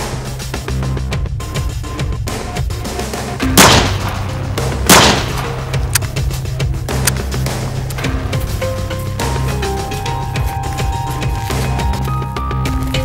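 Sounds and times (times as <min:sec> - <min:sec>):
background music with bass: 0:00.0 - 0:13.0
pistol shots: 0:03.4 - 0:06.2.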